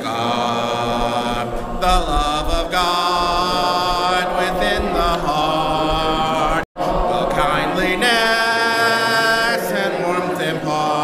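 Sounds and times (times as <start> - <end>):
voices singing a hymn: 0.0 - 11.0.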